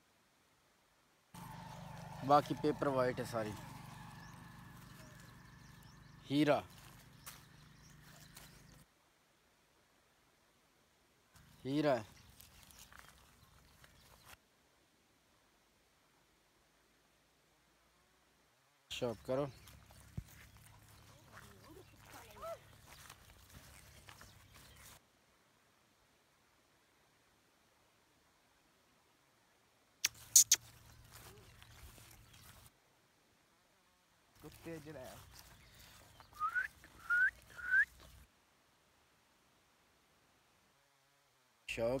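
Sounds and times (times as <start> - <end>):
rustles on grass: 1.4 - 8.9, 11.3 - 14.4, 19.0 - 25.1, 30.0 - 32.9, 34.3 - 38.4.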